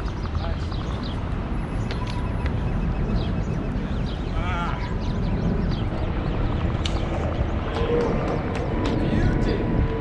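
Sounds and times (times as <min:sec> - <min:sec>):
low rumble of city noise: 0:00.0 - 0:10.0.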